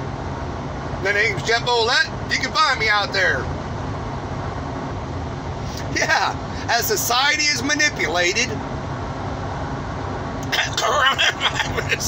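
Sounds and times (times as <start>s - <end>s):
vehicle cabin road noise: 0.0s - 12.0s
man speaking: 1.0s - 3.5s, 5.7s - 8.6s, 10.4s - 12.0s.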